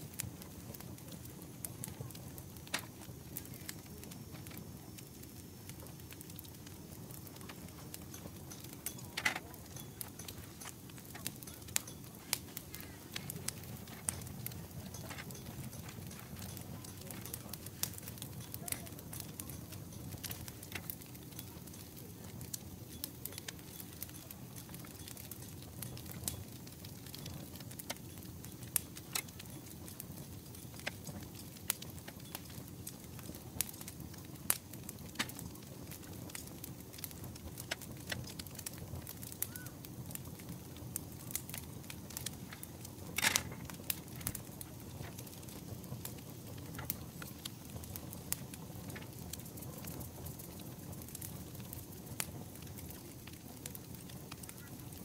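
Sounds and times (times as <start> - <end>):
low steady rumble: 0.0 - 27.6.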